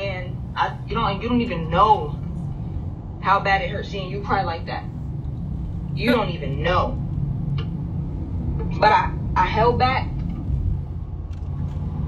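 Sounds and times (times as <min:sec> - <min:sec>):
car engine rumble inside cabin: 0:00.0 - 0:12.0
road noise: 0:00.0 - 0:12.0.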